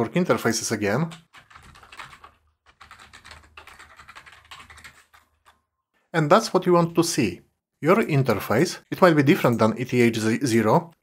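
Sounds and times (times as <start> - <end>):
typing on computer keyboard: 1.1 - 5.7.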